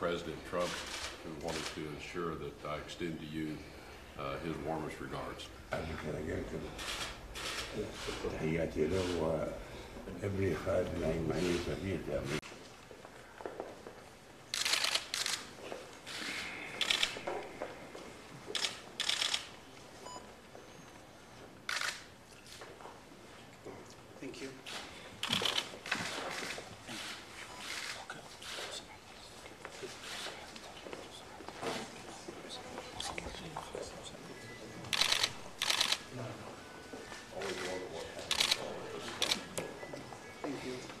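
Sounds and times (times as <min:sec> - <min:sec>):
room hum: 0:00.0 - 0:41.0
camera shutters clicking: 0:06.8 - 0:08.2, 0:14.5 - 0:17.3, 0:18.5 - 0:19.6, 0:21.7 - 0:22.6, 0:24.7 - 0:28.6, 0:34.9 - 0:36.1, 0:37.4 - 0:39.7.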